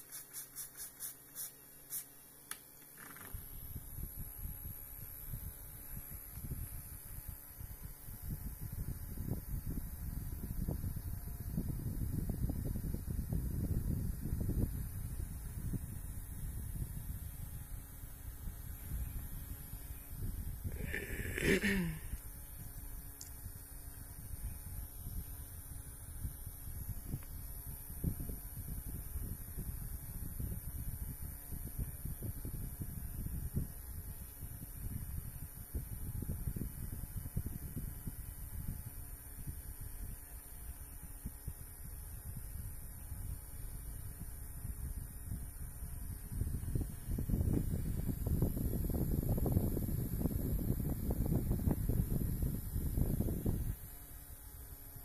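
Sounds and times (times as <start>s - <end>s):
fan airflow buffeting microphone: 0.0s - 55.0s.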